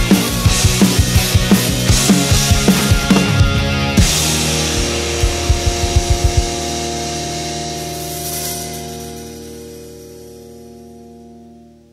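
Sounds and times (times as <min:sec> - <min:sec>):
rock song recording: 0:00.0 - 0:11.7
held guitar chord: 0:00.0 - 0:11.9
low drum hits: 0:02.3 - 0:07.4
crash cymbal hit: 0:04.0 - 0:10.5.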